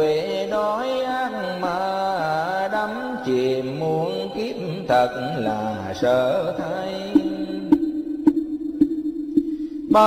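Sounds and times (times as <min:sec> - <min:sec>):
sutra chanting: 0:00.0 - 0:08.2
held drone tone: 0:01.4 - 0:10.0.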